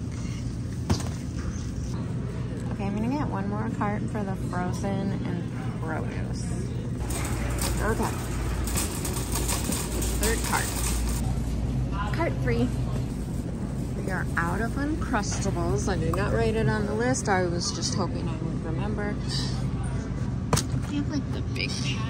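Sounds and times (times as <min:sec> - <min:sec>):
store hubbub: 0:00.0 - 0:22.0.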